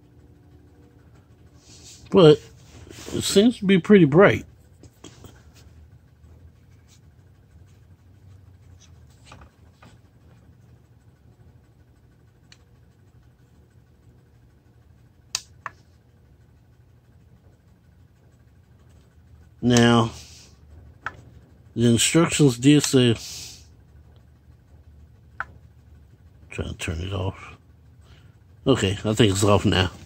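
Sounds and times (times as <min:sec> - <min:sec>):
low steady hum: 0:00.0 - 0:30.0
sharp plastic clicks: 0:15.3 - 0:15.8.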